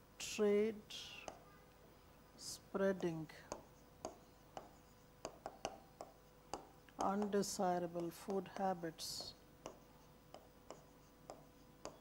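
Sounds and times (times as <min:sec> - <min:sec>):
pen tapping on glass: 0:03.5 - 0:07.4, 0:09.6 - 0:12.0.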